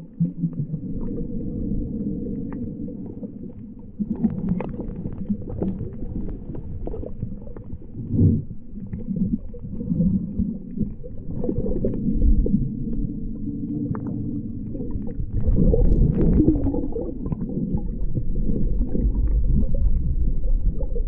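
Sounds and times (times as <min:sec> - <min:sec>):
underwater rumbling and churning: 0:00.0 - 0:21.0.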